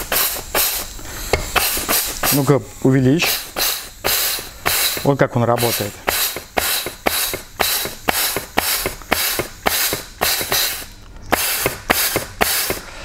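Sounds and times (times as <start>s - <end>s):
compressed air blasts: 0.0s - 13.0s.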